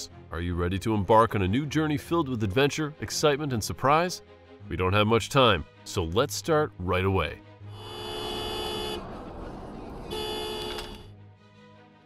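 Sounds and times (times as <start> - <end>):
road noise: 7.6 - 11.2
car horn blasts: 7.7 - 9.2, 10.1 - 11.1.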